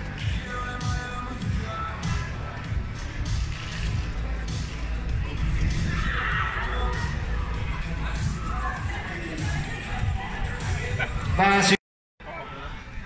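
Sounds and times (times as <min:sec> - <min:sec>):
faint stadium music: 0:00.0 - 0:13.0
wind rumbling on microphone: 0:02.7 - 0:11.2.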